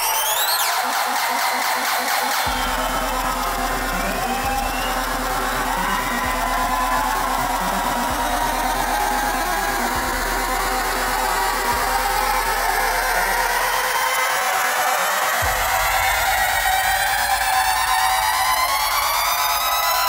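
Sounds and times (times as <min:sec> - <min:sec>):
distorted electronic noise drone: 0:02.4 - 0:20.0.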